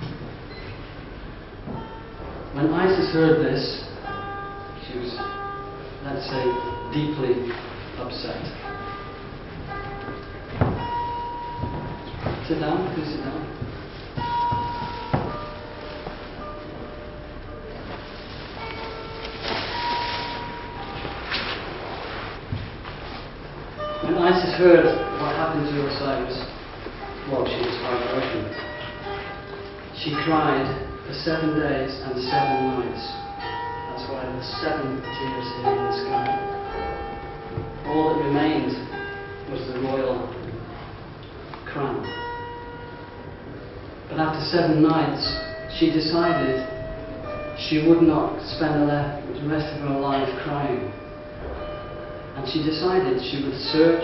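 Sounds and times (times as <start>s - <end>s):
faint steady tones: 0.0s - 22.8s
bell-like chime ringing: 1.7s - 22.3s, 23.8s - 39.8s
high-pitched tone: 8.3s - 22.4s.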